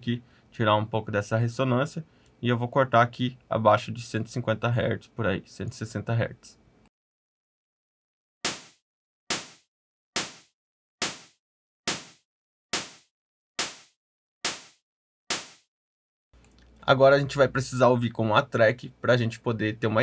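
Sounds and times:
synthesized snare hits: 8.4 - 12.2, 12.8 - 15.7.

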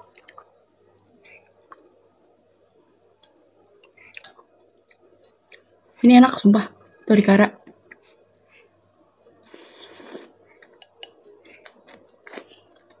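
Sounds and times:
mouth smacks of chewing: 0.0 - 1.9, 10.0 - 13.0.

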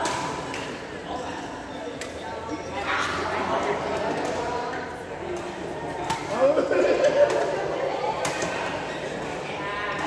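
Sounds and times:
chatter of players' voices: 0.0 - 10.0.

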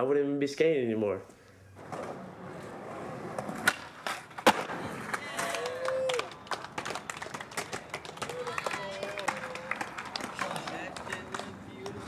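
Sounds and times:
skateboards clacking on concrete: 1.8 - 12.0
people calling out and talking: 5.1 - 12.0.

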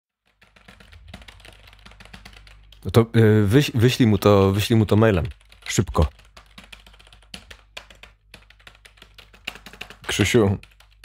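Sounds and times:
computer keyboard typing: 0.2 - 3.0, 4.0 - 11.0.

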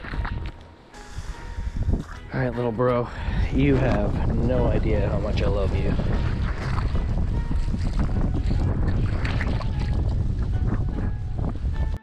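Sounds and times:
wind buffeting microphone: 1.2 - 12.0.

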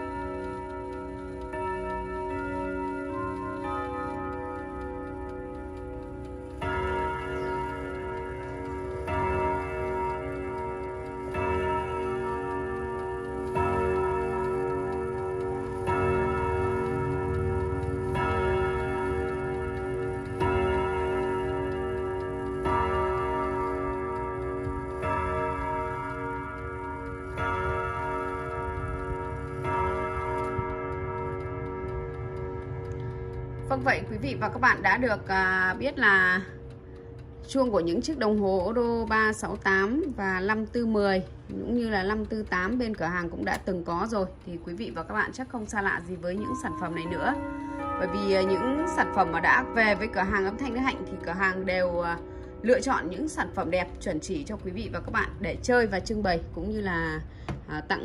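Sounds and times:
clock chime notes: 0.0 - 58.0
clock ticking: 0.0 - 58.0.

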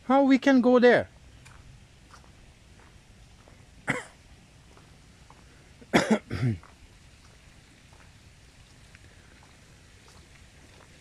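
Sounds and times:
person coughing: 3.8 - 4.2, 5.9 - 6.6.

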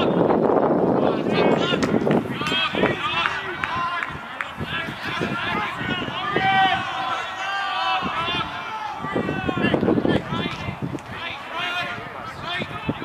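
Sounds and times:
people shouting and cheering: 0.0 - 13.0.

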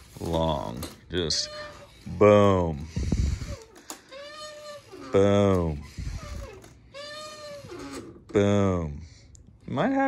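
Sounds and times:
hinge squeaking: 3.2 - 8.3.

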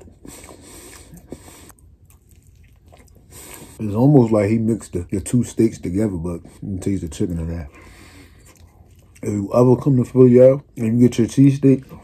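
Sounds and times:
person chewing food: 0.0 - 4.5, 6.4 - 9.8
person speaking: 3.8 - 7.9, 9.2 - 12.0.

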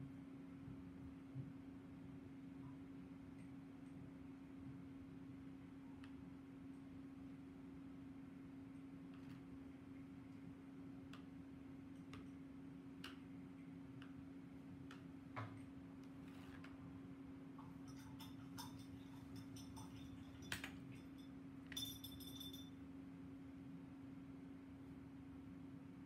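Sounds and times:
metal stylus clinking on plastic: 17.9 - 22.7.

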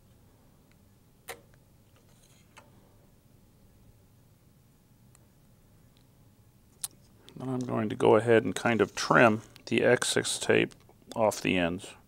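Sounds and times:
soft tape rustle: 1.8 - 2.7, 6.7 - 11.5.

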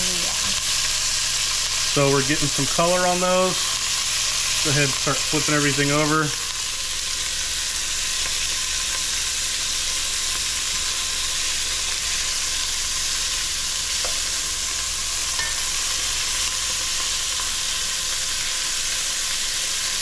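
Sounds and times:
meat sizzling in oil: 0.0 - 20.0.

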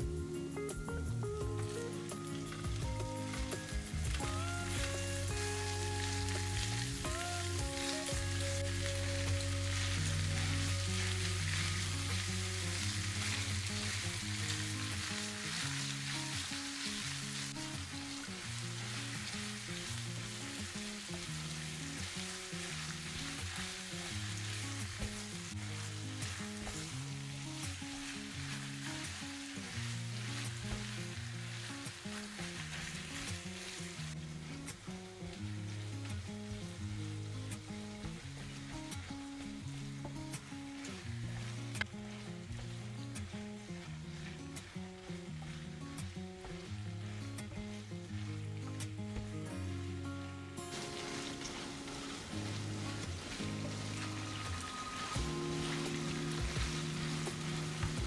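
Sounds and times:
background music: 0.0 - 58.0
meat sizzling in a pan: 0.0 - 58.0.

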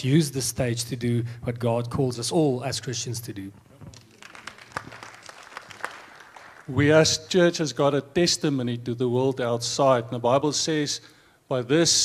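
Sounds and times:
light scattered applause: 3.9 - 6.8.

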